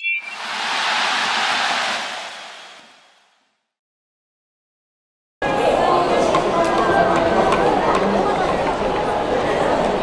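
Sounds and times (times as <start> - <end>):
soft rushing noise: 0.3 - 3.4.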